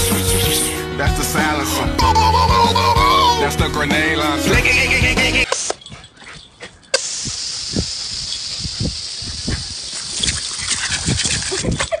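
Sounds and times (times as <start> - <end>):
hose spray nozzle hissing: 6.9 - 10.8.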